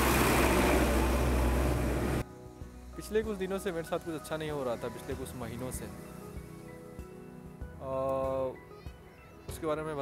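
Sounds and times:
traffic noise: 0.0s - 2.2s
truck passing close: 0.0s - 2.2s.

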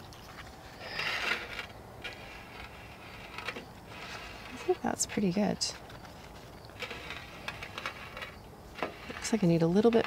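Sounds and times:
flower stems and leaves rustling: 0.0s - 10.0s.

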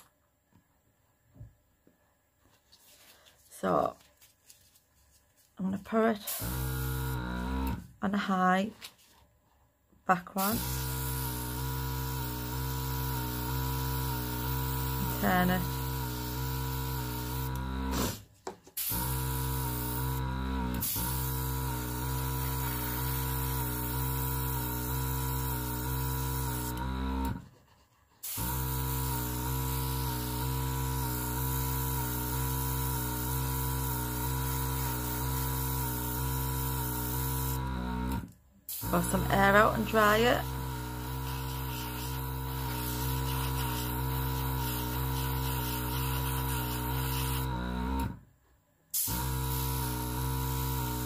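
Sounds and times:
compressor motor hum: 6.3s - 7.9s, 10.6s - 18.2s, 18.9s - 27.4s, 28.3s - 48.2s, 49.0s - 51.0s
airbrush hissing: 10.4s - 18.2s, 18.8s - 20.2s, 20.8s - 26.8s, 27.7s - 37.6s, 38.7s - 47.4s, 49.0s - 51.0s.

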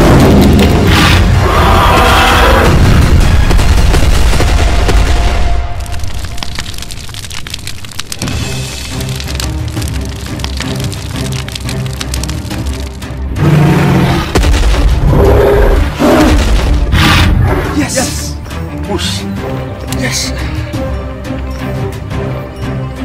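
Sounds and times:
background music: 0.0s - 23.0s
explosion boom with rumble: 2.6s - 6.4s.

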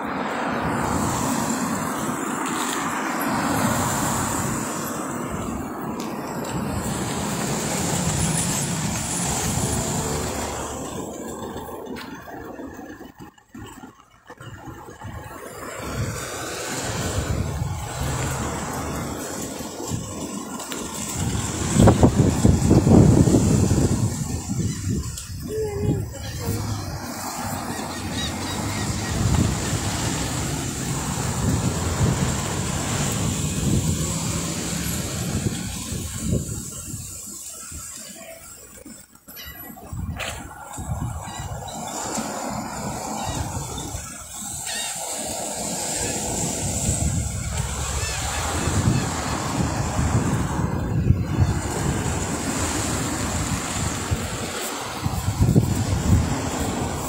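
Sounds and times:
road traffic rushing: 0.0s - 57.0s.

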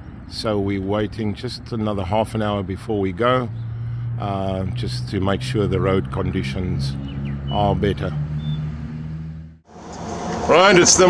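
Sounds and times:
loud even vehicle noise: 0.0s - 11.0s.

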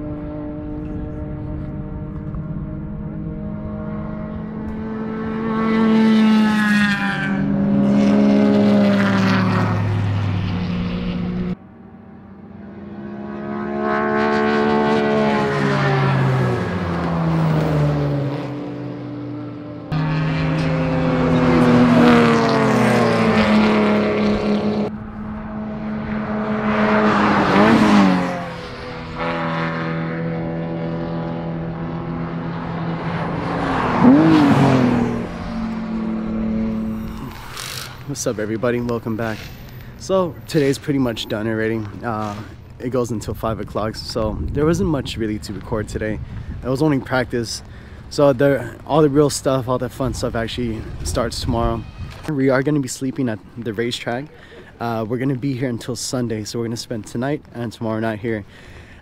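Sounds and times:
racing car engines passing: 0.0s - 59.0s.

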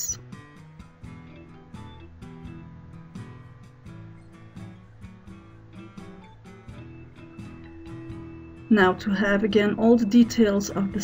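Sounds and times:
plucked background music: 0.0s - 11.0s.

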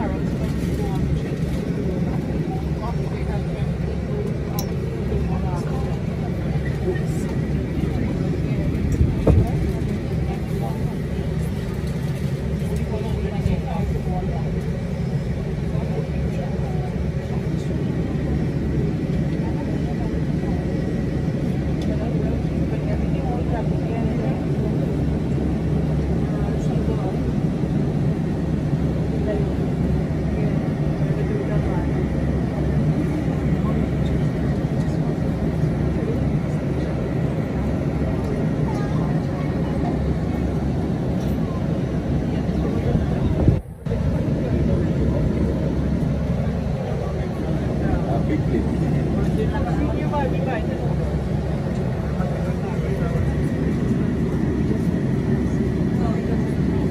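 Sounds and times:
low engine rumble: 0.0s - 56.9s.

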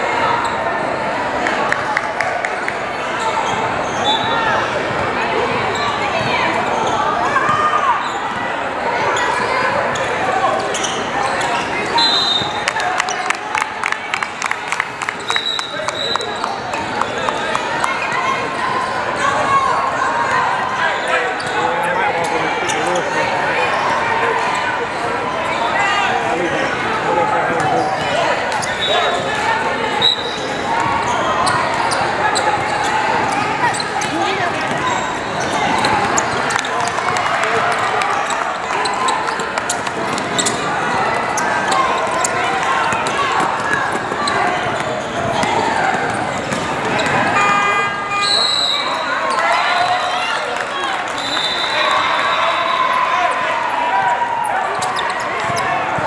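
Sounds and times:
murmur of voices: 0.0s - 56.0s
basketball bouncing on court: 32.6s - 37.2s, 42.8s - 47.7s.

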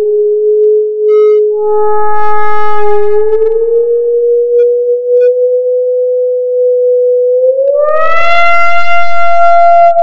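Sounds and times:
low sine-wave tone: 0.0s - 10.0s
higher electronic tones: 1.1s - 5.5s, 7.6s - 10.0s.

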